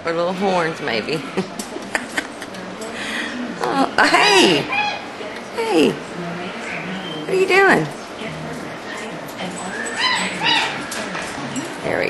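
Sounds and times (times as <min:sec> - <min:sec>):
parrot high-pitched calls: 0:04.0 - 0:05.1, 0:09.7 - 0:10.9.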